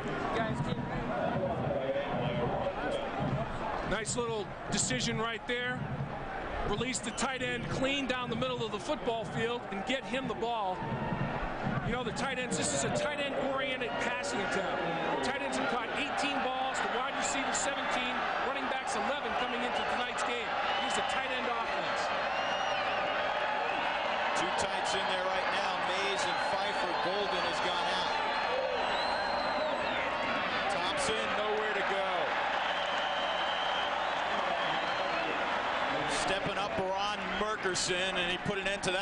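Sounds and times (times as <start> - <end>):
stadium crowd yelling and cheering: 0.0 - 39.0.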